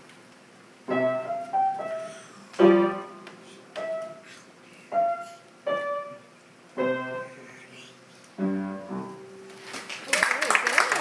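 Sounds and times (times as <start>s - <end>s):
upright piano notes and chords: 0.8s - 9.6s.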